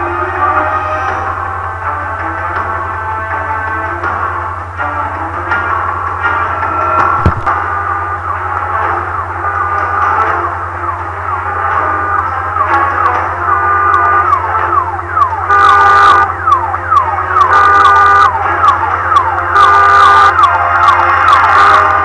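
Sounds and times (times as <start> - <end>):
steady low hum: 0.6 - 18.6
car alarm: 7.2 - 22.0.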